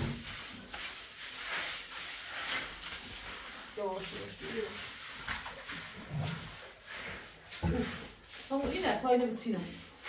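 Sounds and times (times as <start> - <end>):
brush scrubbing wet concrete: 0.0 - 10.0.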